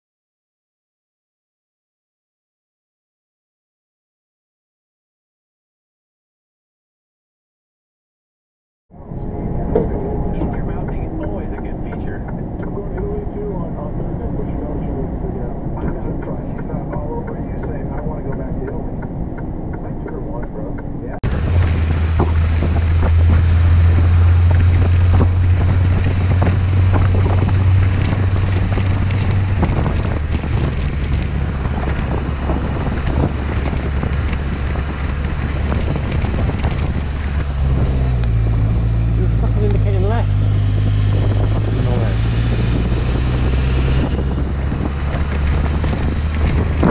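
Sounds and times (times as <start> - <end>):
vehicle cabin drone: 8.9 - 46.9
wind buffeting microphone: 9.0 - 46.9
motorcycle engine running: 21.2 - 46.9.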